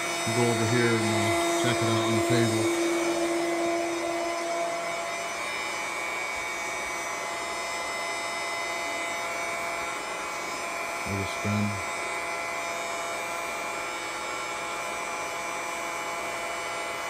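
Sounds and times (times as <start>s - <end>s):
electric pump whining: 0.0s - 17.0s.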